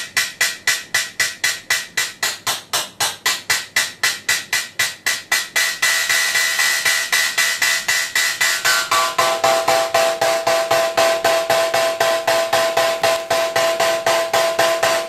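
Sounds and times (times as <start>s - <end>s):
synthesized hi-hat ticking: 0.0s - 15.0s.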